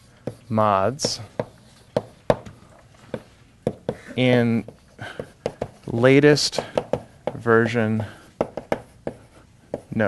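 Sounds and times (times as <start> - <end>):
chalk tapping on blackboard: 0.2 - 2.5, 3.1 - 4.0, 4.6 - 7.5, 8.4 - 10.0
faint chalk scratching: 8.1 - 10.0.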